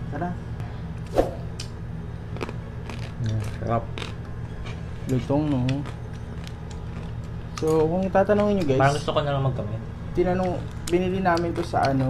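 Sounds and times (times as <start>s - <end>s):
crispy skin crunching when chewed: 2.3s - 8.1s.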